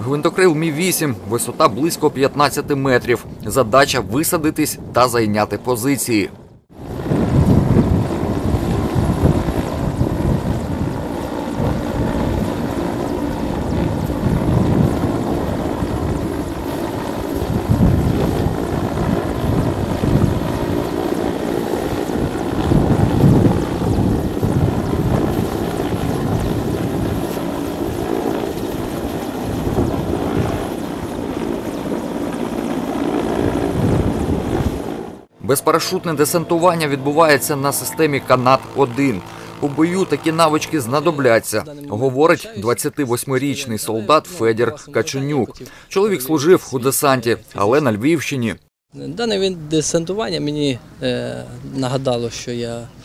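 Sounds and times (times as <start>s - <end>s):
helicopter hovering: 0.0s - 47.0s.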